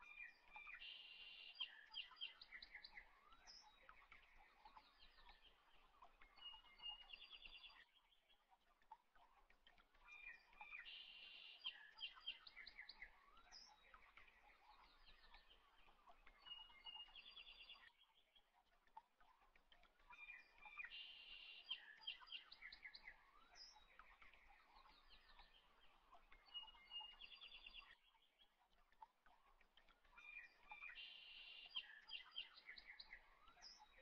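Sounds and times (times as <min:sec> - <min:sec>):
bird chirps and trills: 0:00.0 - 0:34.0.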